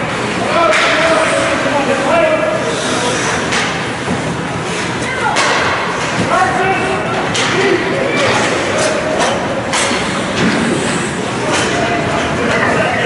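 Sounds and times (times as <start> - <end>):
shouting voices echoing: 5.0 - 10.2.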